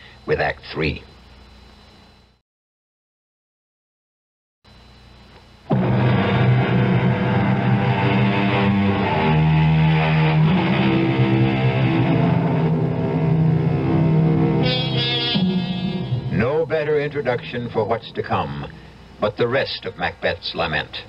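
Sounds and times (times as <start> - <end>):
dramatic bridge music: 5.7 - 16.4.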